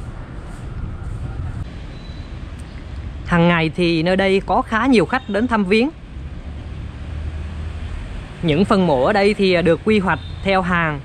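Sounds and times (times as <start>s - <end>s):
steady low rumble: 0.0s - 4.6s.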